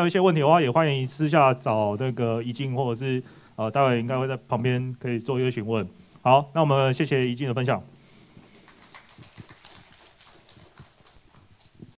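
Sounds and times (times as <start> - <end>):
faint scattered applause: 8.3 - 11.9.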